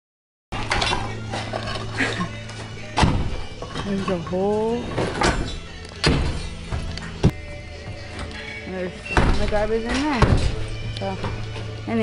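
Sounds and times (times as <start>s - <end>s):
background music: 0.5s - 12.0s
concrete debris thudding: 2.8s - 4.3s.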